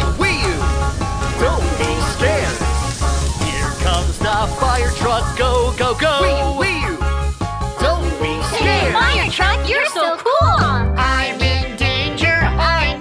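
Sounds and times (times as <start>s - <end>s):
upbeat children's song: 0.0s - 13.0s.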